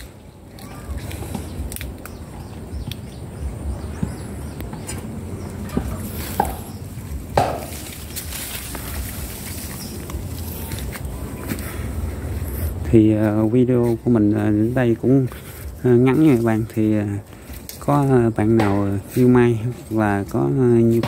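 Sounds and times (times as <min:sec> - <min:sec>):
low steady rumble: 0:00.0 - 0:20.8
leaves brushing past: 0:05.7 - 0:12.8.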